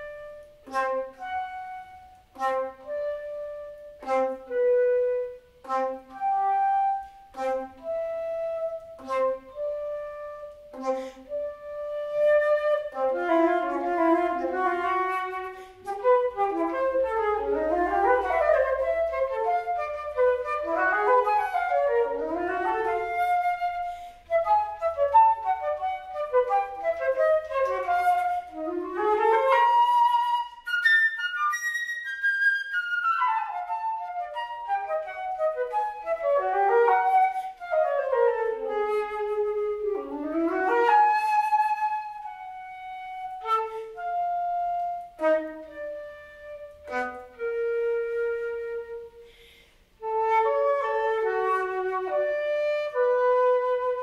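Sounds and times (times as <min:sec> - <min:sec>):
solo flute playing: 0:00.0 - 0:54.0.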